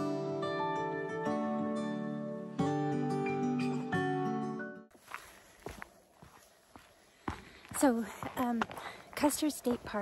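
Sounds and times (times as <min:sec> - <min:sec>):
footsteps on snow: 0:04.9 - 0:10.0.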